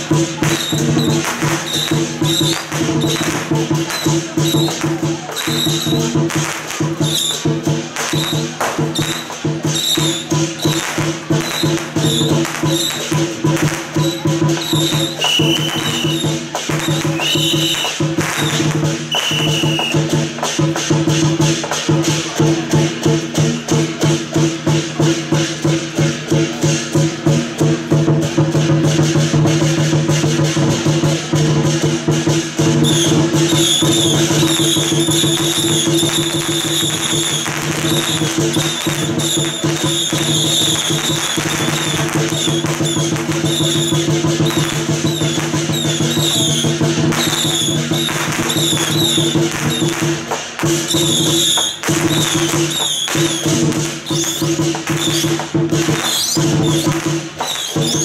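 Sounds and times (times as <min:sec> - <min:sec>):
drum beating: 0:00.0 - 0:58.0
firecrackers crackling: 0:00.0 - 0:58.0
gongs and cymbals: 0:00.0 - 0:58.0.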